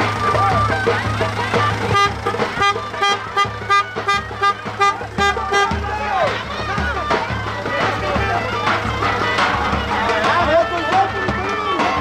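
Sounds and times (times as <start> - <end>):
loud dance music: 0.2 - 12.0
vehicle horn short blasts: 1.8 - 5.9.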